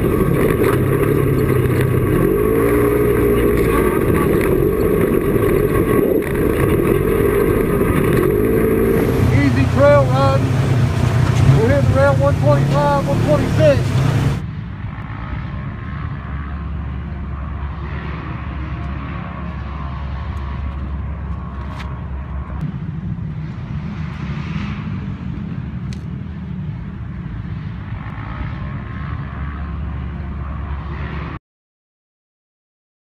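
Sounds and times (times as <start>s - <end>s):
vehicle engine running steadily: 0.0s - 31.4s.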